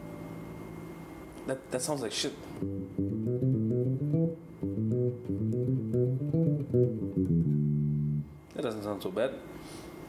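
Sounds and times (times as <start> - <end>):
electric bass played fingerstyle: 2.6 - 8.5.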